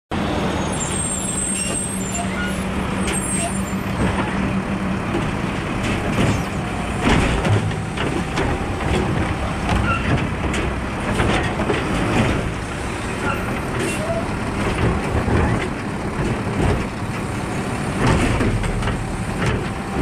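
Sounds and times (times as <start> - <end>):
diesel engine running: 0.2 - 20.0
hydraulic arm knocks and clatter: 5.0 - 12.8, 13.5 - 20.0.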